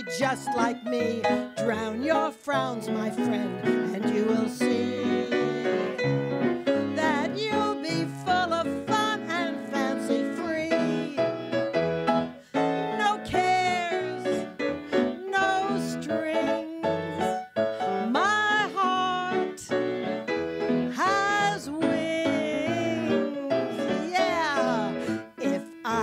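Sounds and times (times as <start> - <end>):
woman singing into a microphone: 0.0 - 6.0, 6.9 - 11.3, 12.9 - 19.7, 20.9 - 26.0
piano accompaniment: 0.0 - 26.0.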